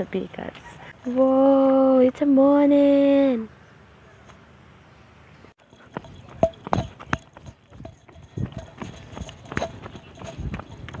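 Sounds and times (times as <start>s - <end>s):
running footsteps on concrete: 5.6s - 11.0s.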